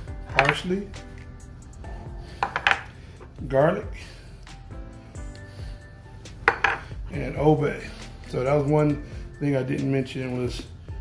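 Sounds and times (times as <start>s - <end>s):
quiet background music: 0.0s - 11.0s
ceramic ramekin clinking: 6.4s - 6.9s.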